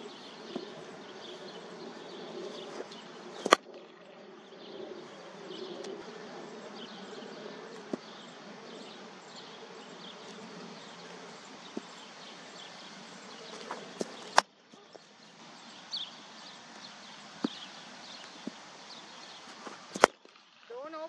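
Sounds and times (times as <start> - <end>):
cricket bat striking ball: 3.4 - 3.6, 13.4 - 14.5, 19.9 - 20.2.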